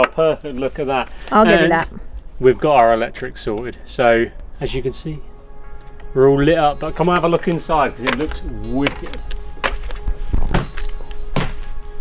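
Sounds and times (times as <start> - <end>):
background music: 0.0 - 12.0
footsteps thudding on lorry floor: 9.6 - 11.7.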